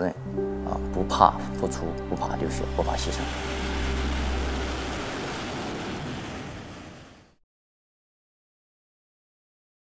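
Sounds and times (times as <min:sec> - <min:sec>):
rushing wind: 0:00.4 - 0:07.4.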